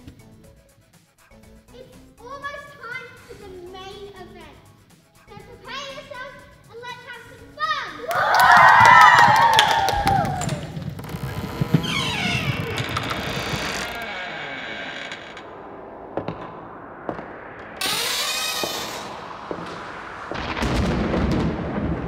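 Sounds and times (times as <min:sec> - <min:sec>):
children shrieking: 0:08.0 - 0:10.7.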